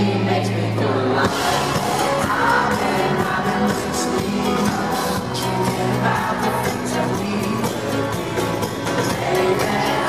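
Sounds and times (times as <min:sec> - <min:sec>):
live pop-rock band: 0:00.0 - 0:10.0.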